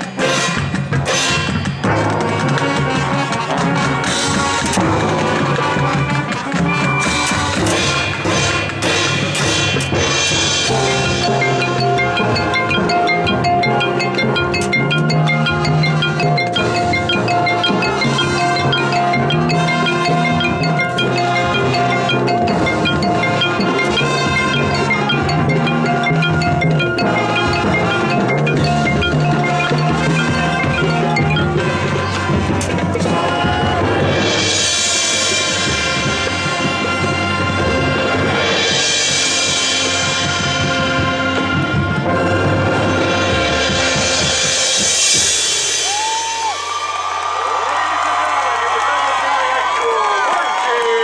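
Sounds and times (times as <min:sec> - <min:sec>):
marching band playing: 0:00.0 - 0:49.2
quick high mallet notes: 0:04.4 - 0:46.9.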